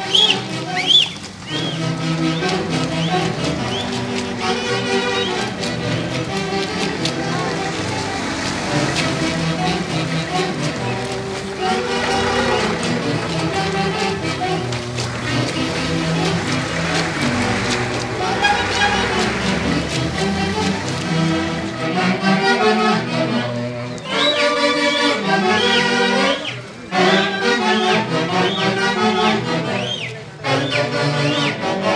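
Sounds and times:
band playing dance music: 0:00.0 - 0:31.9.

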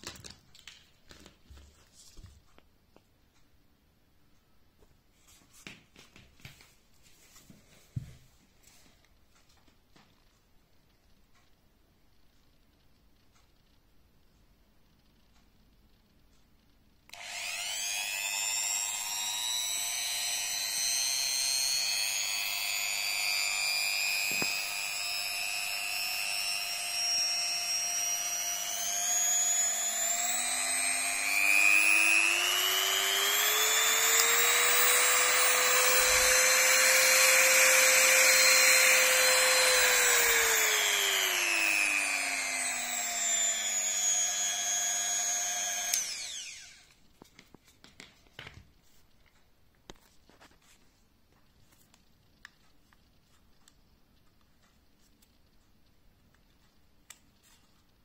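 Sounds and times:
rotary multi-tool motor whining: 0:17.1 - 0:47.0.

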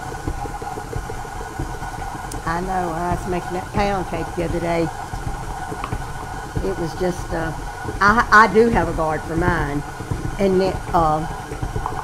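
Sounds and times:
stand mixer motor humming: 0:00.0 - 0:12.0.

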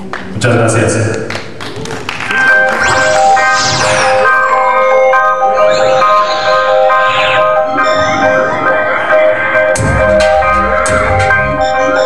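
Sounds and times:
bell-like synth notes: 0:02.3 - 0:12.0
rising synth sweeps: 0:02.3 - 0:12.0.

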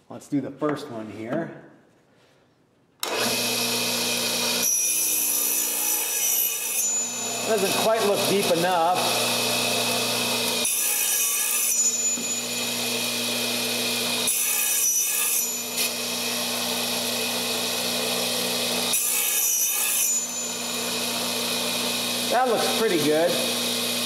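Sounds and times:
power saw running: 0:03.0 - 0:24.0.

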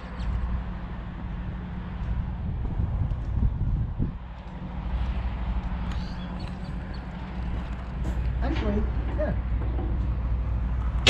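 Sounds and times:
wind buffeting microphone: 0:00.3 - 0:11.0.

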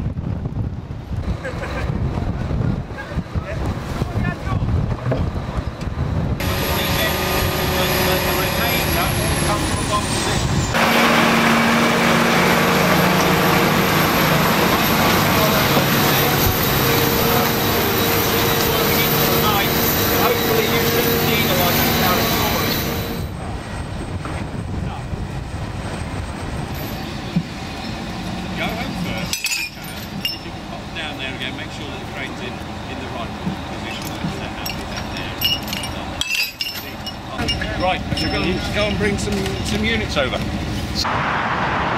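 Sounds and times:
heavy diesel machinery running: 0:00.0 - 0:41.9.

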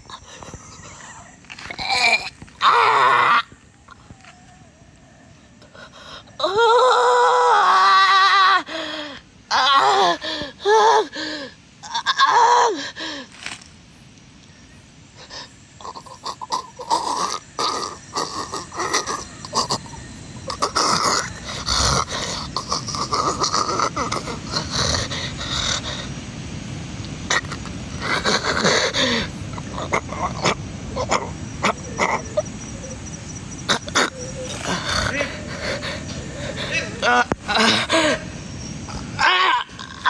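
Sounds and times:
undergrowth rustling and crackling: 0:13.0 - 0:14.6
animal grunting and growling: 0:20.5 - 0:25.2.

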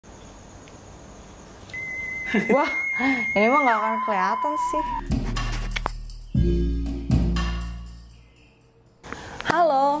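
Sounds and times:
faint room hiss: 0:00.1 - 0:03.6
thin high whine: 0:01.7 - 0:05.8
high-pitched electronic beep: 0:01.8 - 0:05.1.

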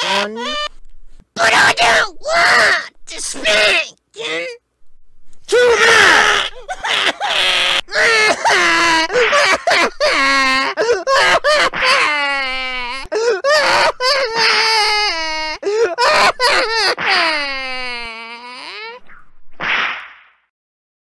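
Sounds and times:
child crying and wailing: 0:00.0 - 0:00.7, 0:01.4 - 0:02.9, 0:05.5 - 0:19.0
belt whipping cracks: 0:19.6 - 0:20.4.

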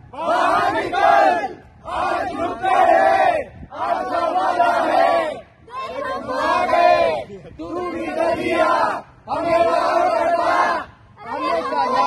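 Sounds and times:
young men chanting in unison: 0:00.1 - 0:12.0.

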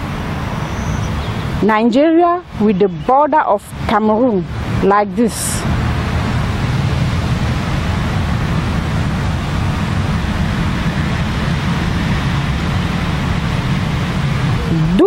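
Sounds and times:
even rushing noise: 0:00.0 - 0:15.0
low hum: 0:00.0 - 0:15.0.

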